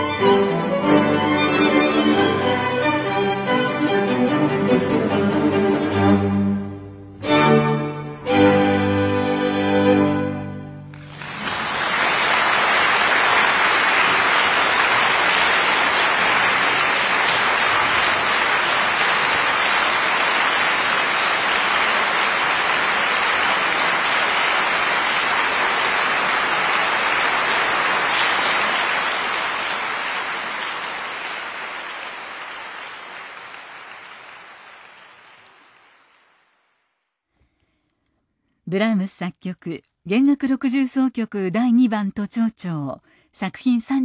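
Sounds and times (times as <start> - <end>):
audience applauding: 10.9 - 36.8.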